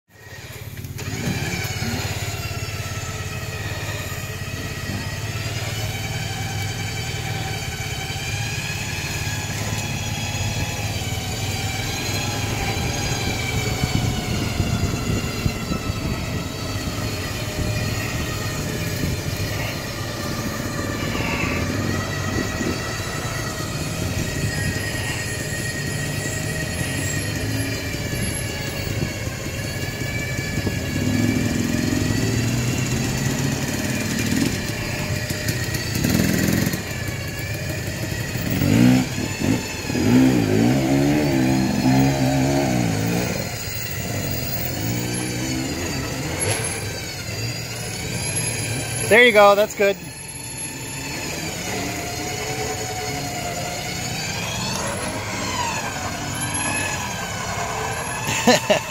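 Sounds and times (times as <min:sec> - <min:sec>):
electric winch whine: 0:00.1 - 0:58.9
engine revving: 0:00.1 - 0:58.9.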